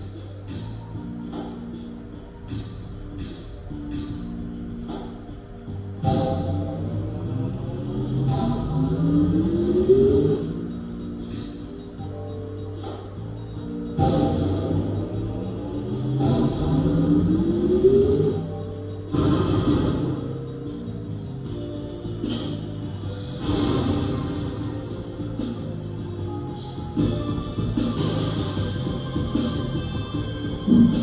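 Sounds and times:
slot machine music and effects: 5.8s - 31.0s
tone rising in pitch: 6.0s - 11.3s, 13.9s - 20.4s.

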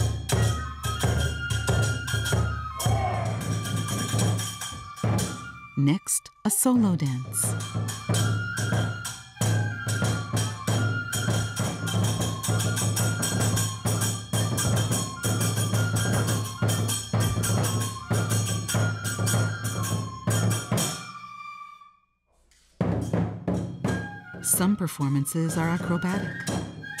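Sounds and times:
flute held notes: 0.0s - 22.0s
drum quick steady beat: 5.8s - 7.5s.

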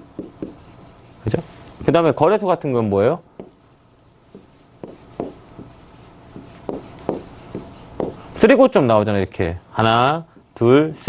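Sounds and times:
pen tapping and scratching on board: 0.0s - 0.7s, 3.4s - 3.6s, 4.3s - 8.2s.

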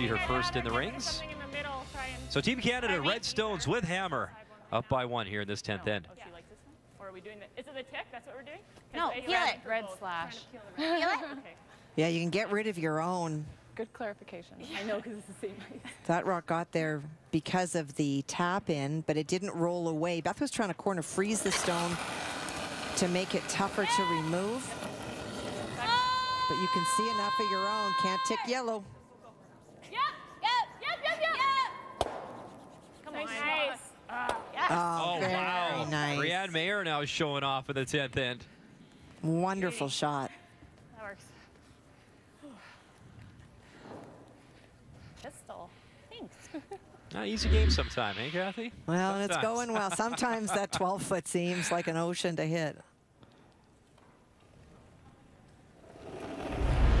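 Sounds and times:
faint arena ambience: 0.0s - 21.8s, 23.8s - 49.1s
brooms scrubbing ice: 21.3s - 25.8s
whoosh with deep rumble: 47.4s - 48.4s, 56.5s - 57.0s.

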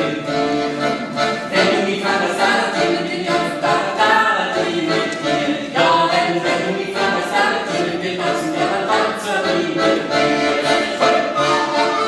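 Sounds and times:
accordion: 0.0s - 12.0s
voices singing folk melody: 0.0s - 12.0s.

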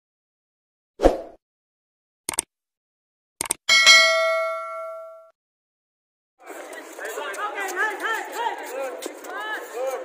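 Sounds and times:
quick clicks: 2.3s - 2.5s, 3.4s - 3.6s
bell-like ding: 3.7s - 5.3s.

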